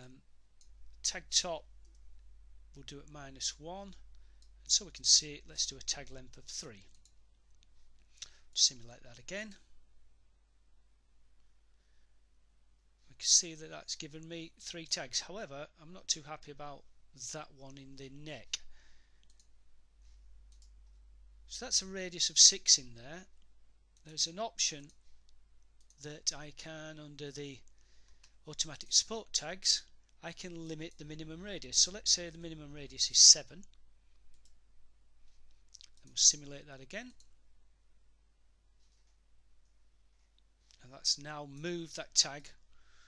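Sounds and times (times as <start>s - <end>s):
low steady hum: 0.0s - 43.0s
computer mouse clicks: 6.8s - 8.4s, 19.2s - 19.5s, 20.5s - 21.0s.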